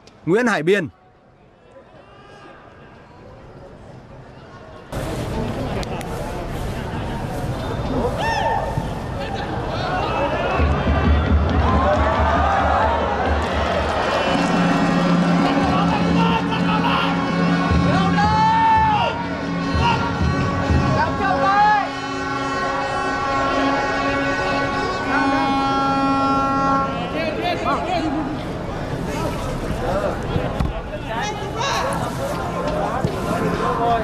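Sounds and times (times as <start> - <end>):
stadium crowd noise: 0.0 - 34.0
drum beating: 10.5 - 15.7.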